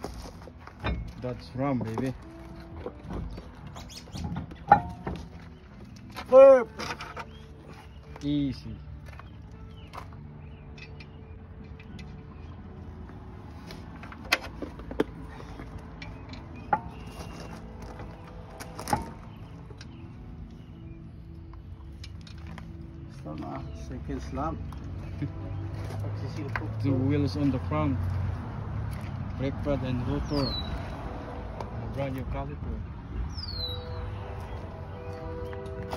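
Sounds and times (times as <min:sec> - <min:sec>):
faint music tones: 0:00.0 - 0:35.9
lug nuts clicking and clinking: 0:00.2 - 0:07.4, 0:13.7 - 0:20.0.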